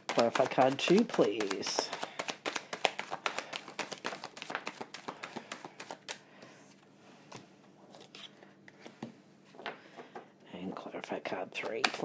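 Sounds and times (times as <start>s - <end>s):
cards being shuffled by hand: 0.0s - 6.2s, 11.5s - 12.0s
cards tapped down: 0.0s - 6.2s, 11.6s - 12.0s.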